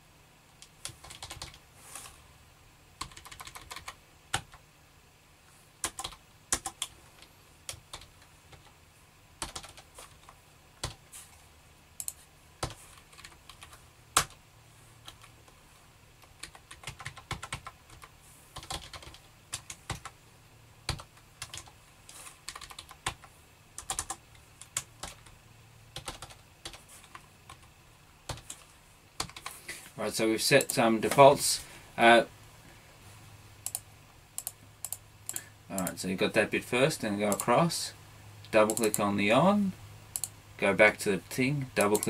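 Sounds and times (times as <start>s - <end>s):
keyboard typing clicks: 12.0s - 14.4s, 33.6s - 33.8s, 34.4s - 35.9s, 38.7s - 39.0s, 40.1s - 40.3s.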